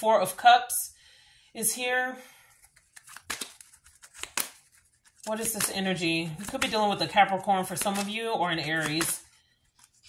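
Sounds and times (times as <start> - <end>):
cards flicking and sliding: 2.6 - 10.0.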